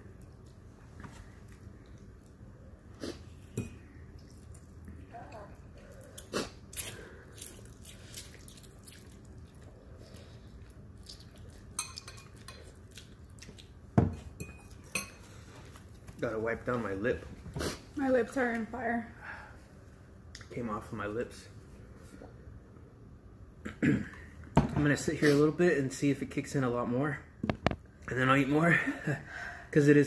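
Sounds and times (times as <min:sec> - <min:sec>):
forks clinking on ceramic bowls: 0:11.8 - 0:12.7.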